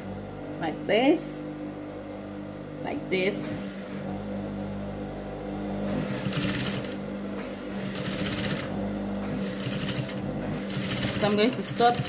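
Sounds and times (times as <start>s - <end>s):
sewing machine motor hum: 3.2s - 12.0s
sewing machine needle strokes: 6.1s - 7.0s, 7.9s - 8.7s, 9.4s - 12.0s.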